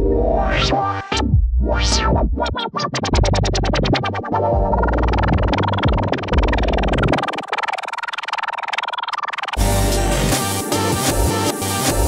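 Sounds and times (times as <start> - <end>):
electronic dance music: 4.1 - 12.0
wobble effect pulses: 4.7 - 10.4.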